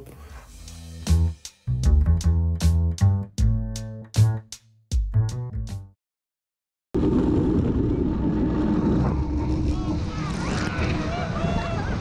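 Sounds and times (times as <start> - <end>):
boat engine drone: 7.0 - 12.0
wind on microphone: 7.0 - 12.0.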